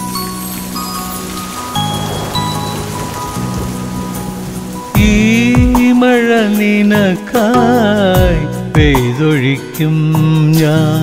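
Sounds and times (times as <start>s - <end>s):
rain on a hard surface: 0.0s - 11.0s
soft instrumental music: 0.0s - 11.0s
man singing: 4.9s - 11.0s.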